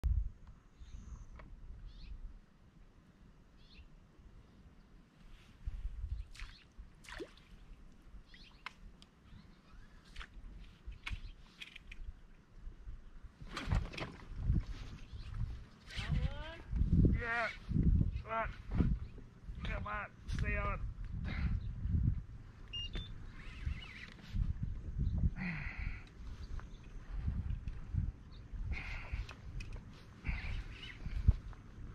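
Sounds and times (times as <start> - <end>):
wind rumble on microphone: 0.0 - 3.0, 5.3 - 31.9
bird chirping: 0.8 - 2.2, 3.6 - 3.9, 8.2 - 10.2, 22.7 - 24.2, 30.3 - 31.3.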